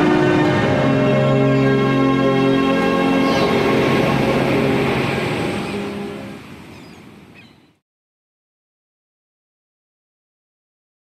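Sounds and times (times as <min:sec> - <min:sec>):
church bells ringing: 0:00.0 - 0:06.6.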